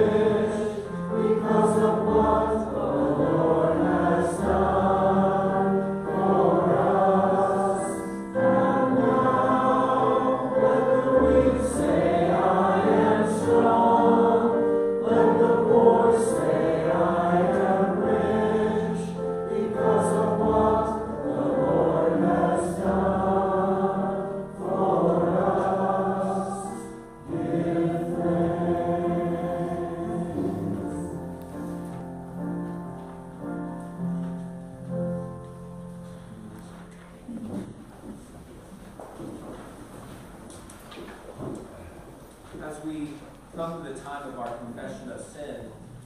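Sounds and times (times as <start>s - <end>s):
group singing worship song: 0.0s - 31.8s
keyboard: 0.0s - 37.8s.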